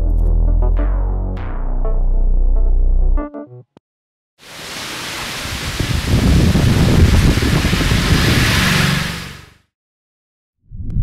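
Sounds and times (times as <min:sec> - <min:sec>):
steady rushing noise: 0:04.5 - 0:09.6.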